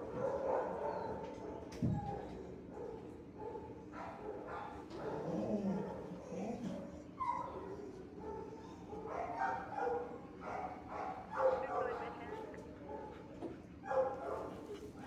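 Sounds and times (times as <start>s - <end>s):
dogs barking: 0.0s - 15.0s
dogs whining: 0.5s - 2.6s, 4.6s - 9.5s.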